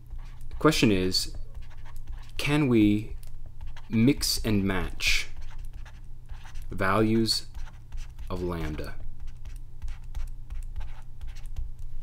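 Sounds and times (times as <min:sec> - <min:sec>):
steady low hum: 0:00.0 - 0:12.0
stylus tapping and scratching tablet: 0:00.0 - 0:12.0.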